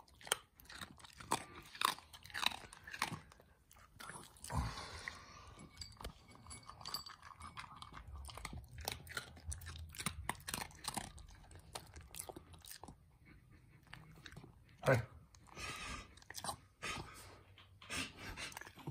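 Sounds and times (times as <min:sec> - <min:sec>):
dog crunching dry kibble: 0:00.0 - 0:13.0.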